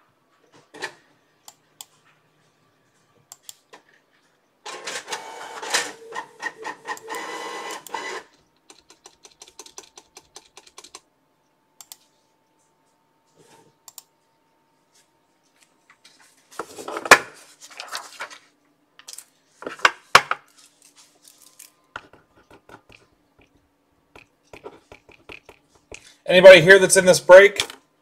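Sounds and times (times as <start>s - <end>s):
keyboard typing clicks: 7.8s - 11.1s, 11.8s - 12.1s, 13.8s - 14.1s, 22.0s - 26.0s.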